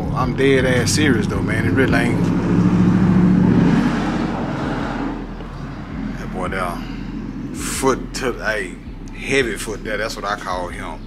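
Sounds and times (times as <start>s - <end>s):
car engine accelerating: 0.0s - 11.0s.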